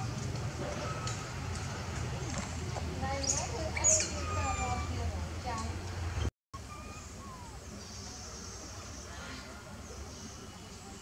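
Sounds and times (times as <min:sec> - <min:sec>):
monkeys calling: 0:03.2 - 0:05.2, 0:06.6 - 0:09.5
monkey shrill squeal: 0:03.8 - 0:05.0, 0:06.6 - 0:07.6.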